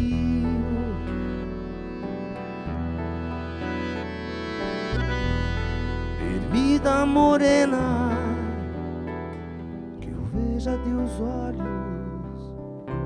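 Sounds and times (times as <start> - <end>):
accordion: 0.0 - 13.0
acoustic guitar: 0.0 - 13.0
electric bass: 0.0 - 13.0.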